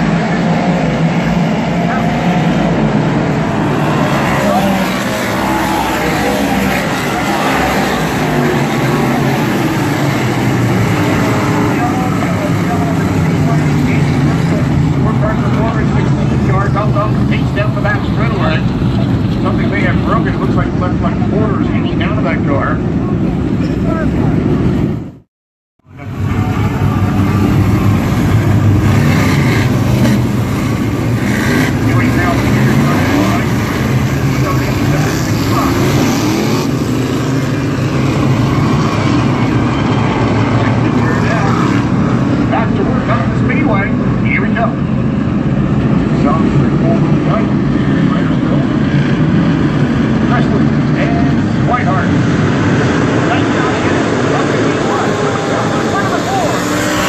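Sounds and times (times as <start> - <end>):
race car engines droning: 0.0 - 25.2, 25.8 - 57.0
voices: 3.5 - 24.5, 30.9 - 36.2, 38.9 - 41.9, 42.5 - 44.8, 50.2 - 52.2, 53.1 - 57.0.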